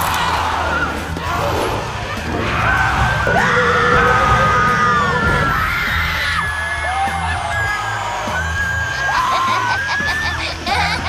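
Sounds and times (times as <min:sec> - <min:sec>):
people screaming and yelling: 0:00.0 - 0:11.0.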